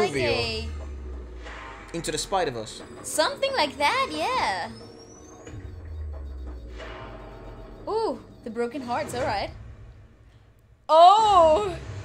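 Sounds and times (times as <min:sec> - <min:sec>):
deep bass rumble: 0:00.1 - 0:10.2.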